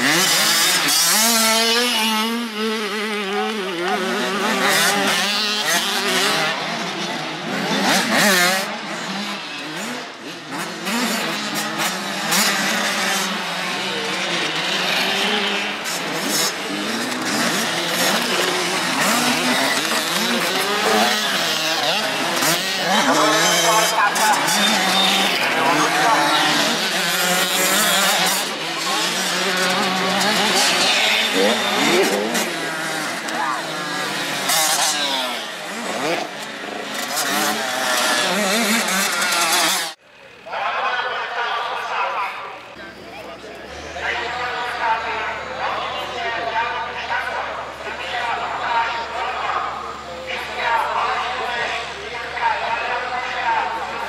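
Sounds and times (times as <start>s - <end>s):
motocross bike engines revving: 0.0s - 54.0s.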